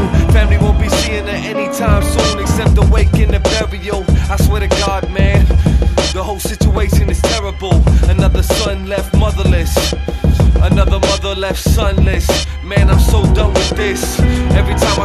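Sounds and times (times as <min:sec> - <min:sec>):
hip hop beat with heavy bass: 0:00.0 - 0:15.0
rapping over a beat: 0:00.0 - 0:15.0.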